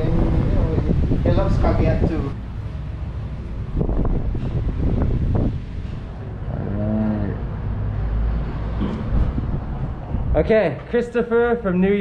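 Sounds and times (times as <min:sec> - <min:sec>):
wind rumble on microphone: 0:00.0 - 0:10.6.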